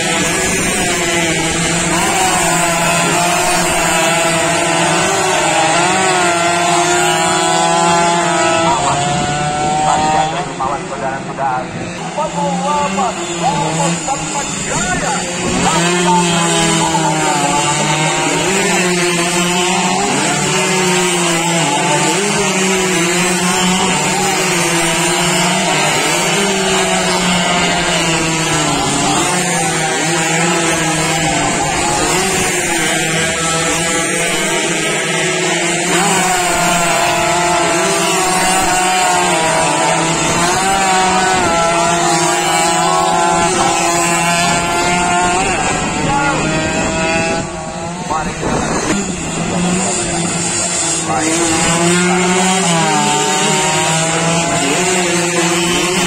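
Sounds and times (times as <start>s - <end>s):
two-stroke motorcycles racing: 0.0s - 56.0s.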